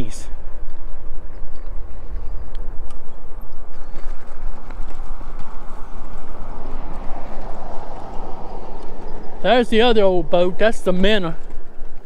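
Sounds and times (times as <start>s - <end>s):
wind rumble on microphone: 0.0s - 12.0s
tyres crunching over gravel: 3.7s - 12.0s.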